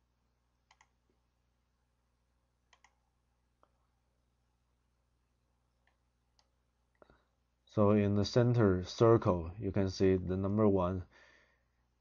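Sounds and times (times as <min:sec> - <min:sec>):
computer mouse clicks: 0:00.6 - 0:01.0, 0:02.7 - 0:03.0, 0:05.8 - 0:06.6.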